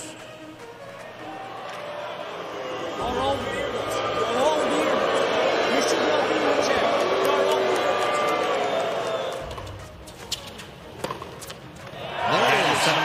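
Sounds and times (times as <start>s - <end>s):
arena crowd noise: 0.0s - 13.0s
tennis ball bouncing: 9.4s - 11.9s.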